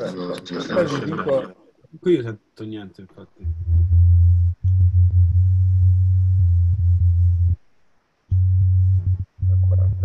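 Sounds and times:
low electronic sine tone: 3.4 - 7.6, 8.3 - 10.0.

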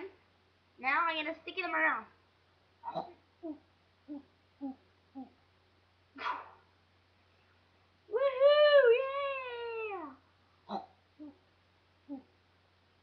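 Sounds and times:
child humming: 3.4 - 5.4, 11.2 - 11.4, 12.1 - 12.4.

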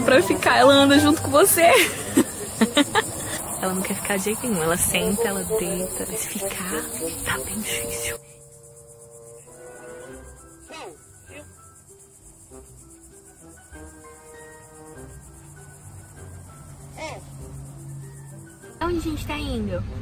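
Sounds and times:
insects chirping: 0.0 - 19.5.

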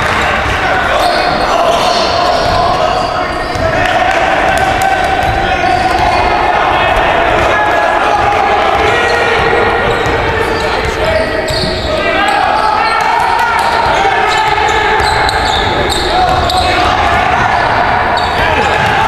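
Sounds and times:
voices in a hall: 0.0 - 19.0.

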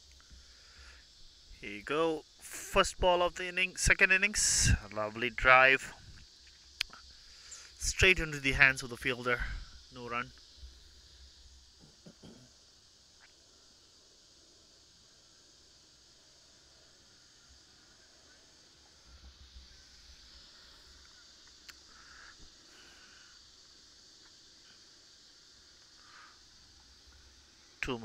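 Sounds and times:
steady high hiss: 0.0 - 28.0
low wind rumble on microphone: 5.9 - 6.3.

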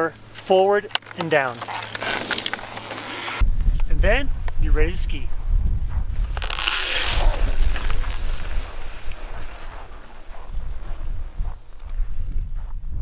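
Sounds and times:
skis hissing on snow: 1.8 - 3.4
wind buffeting microphone: 3.4 - 13.0.

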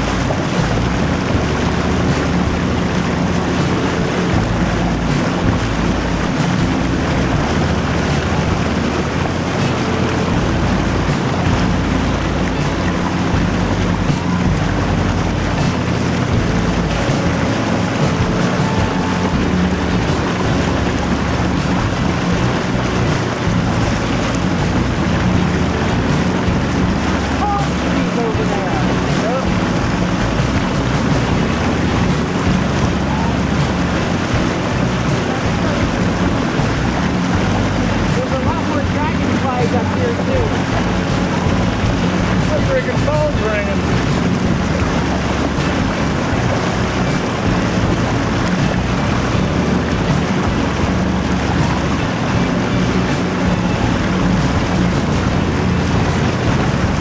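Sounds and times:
motorboat engine drone: 0.0 - 57.0
water rushing past hull: 0.0 - 57.0
wind buffeting microphone: 0.0 - 57.0.

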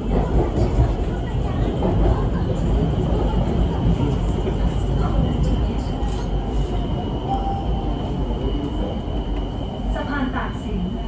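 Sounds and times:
train rumbling: 0.0 - 11.0.

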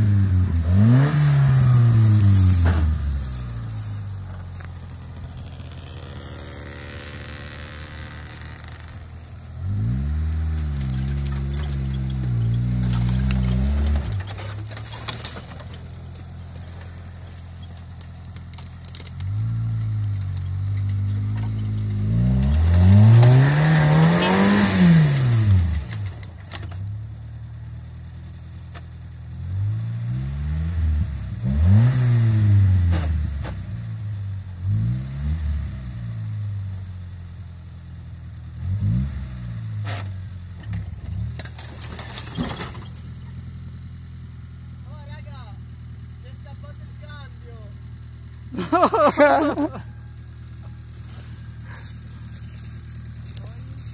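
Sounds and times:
engine revving under load: 0.0 - 26.4, 29.3 - 36.6, 38.5 - 43.2.

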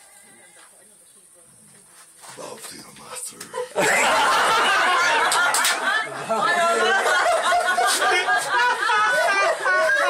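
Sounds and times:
group of people chattering: 0.0 - 10.0.

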